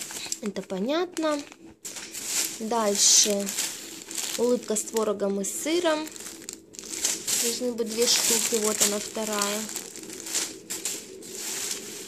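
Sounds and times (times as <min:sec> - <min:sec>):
plastic bags rustling: 0:00.0 - 0:12.0.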